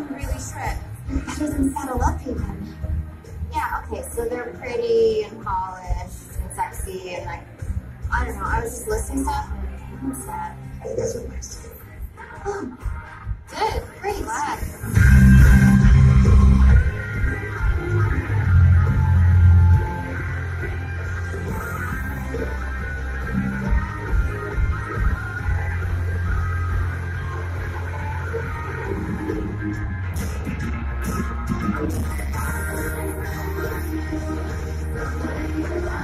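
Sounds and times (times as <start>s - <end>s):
rock music: 0.0s - 36.0s
person singing: 31.6s - 36.0s.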